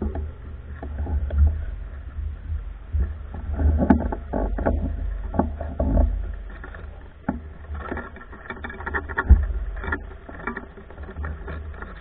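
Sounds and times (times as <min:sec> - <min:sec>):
irregular knocks and clicks: 0:00.0 - 0:12.0
wind rumble on microphone: 0:00.0 - 0:12.0.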